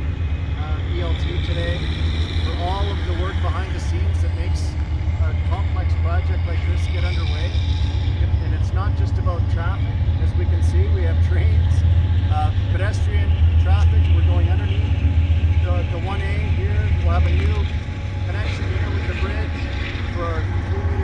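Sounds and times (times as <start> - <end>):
loud low rumble: 0.0 - 21.0
people talking: 0.6 - 1.9, 2.5 - 14.9, 15.6 - 21.0.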